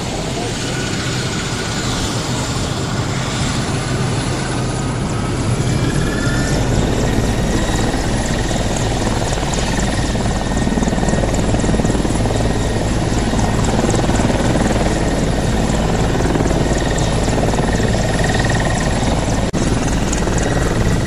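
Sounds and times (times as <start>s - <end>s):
helicopter rotor beating: 0.0s - 21.0s
turboshaft engine whine: 0.0s - 21.0s.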